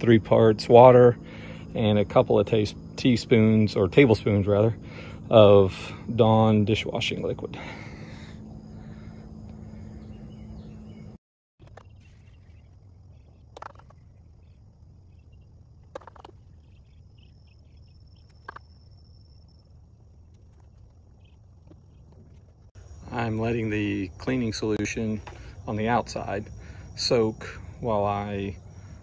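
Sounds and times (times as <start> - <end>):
high insect buzz: 0.1 - 11.1, 11.7 - 29.0.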